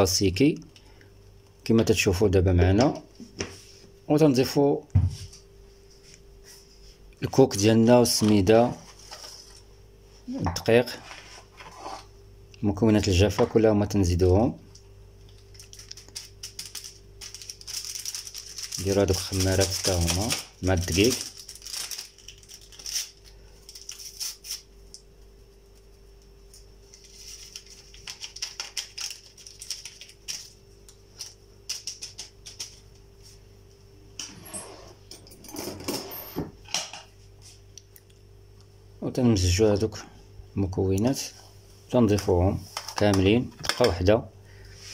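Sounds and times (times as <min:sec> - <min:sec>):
person speaking: 0:10.2 - 0:11.0, 0:18.7 - 0:21.4
packet crinkling and rattling: 0:15.3 - 0:24.6, 0:27.0 - 0:32.8.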